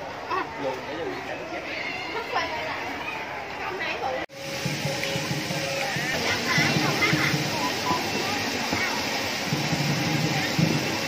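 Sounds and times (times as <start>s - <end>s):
background chatter of voices: 0.0s - 11.0s.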